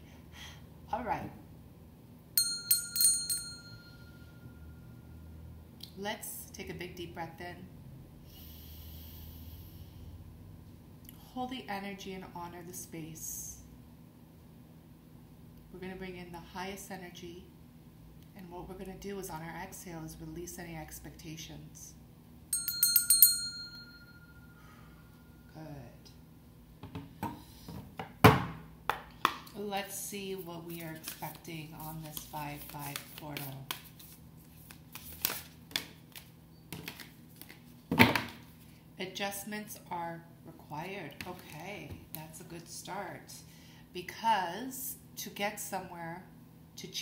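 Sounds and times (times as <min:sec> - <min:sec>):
brass hand bell ringing: 0:02.4 - 0:04.8, 0:22.5 - 0:24.8.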